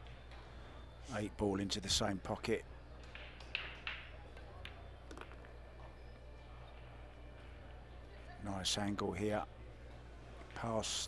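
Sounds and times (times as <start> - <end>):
pool balls clicking: 3.0 - 5.5.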